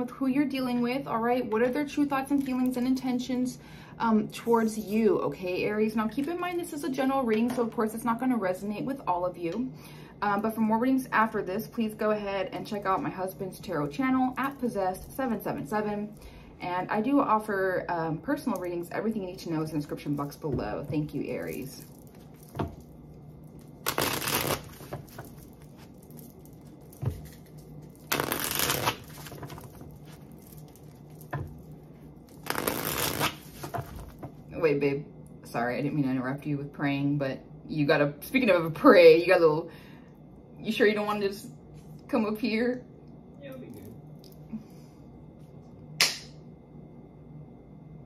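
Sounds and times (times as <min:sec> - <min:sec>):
faint room hum: 0:00.0 - 0:48.0
cards being shuffled: 0:23.6 - 0:31.7, 0:32.3 - 0:34.4.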